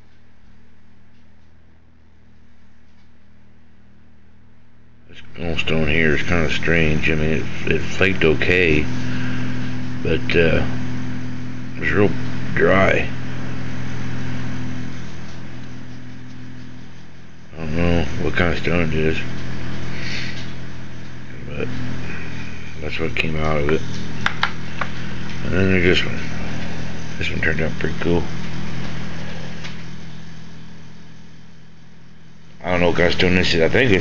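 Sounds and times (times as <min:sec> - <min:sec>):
low mechanical hum: 0:00.0 - 0:34.0.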